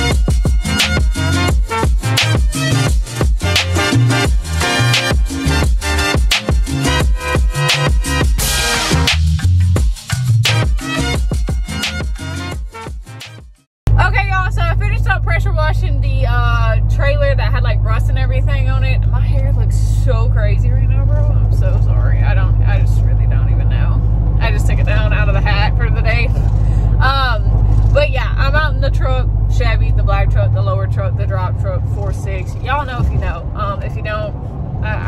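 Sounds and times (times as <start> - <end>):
engine drone and road noise: 0.0 - 12.5, 13.9 - 35.0
woman speaking: 14.0 - 35.0.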